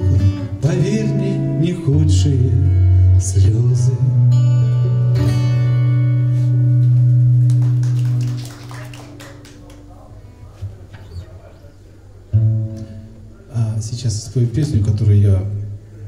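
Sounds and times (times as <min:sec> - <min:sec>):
acoustic guitar chord ringing: 0:00.0 - 0:07.9.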